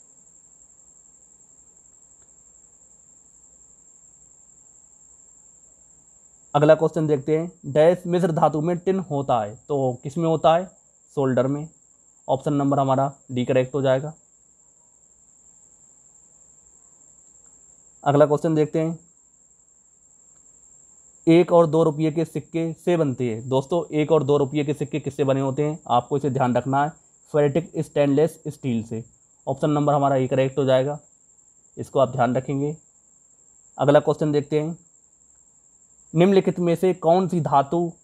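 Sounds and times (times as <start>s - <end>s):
faint high-pitched whine: 0.0s - 38.0s
low background hiss: 0.0s - 38.0s.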